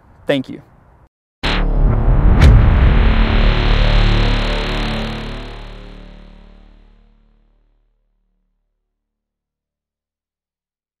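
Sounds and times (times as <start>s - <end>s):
whoosh: 1.4s - 7.4s
deep sustained hit: 1.4s - 8.0s.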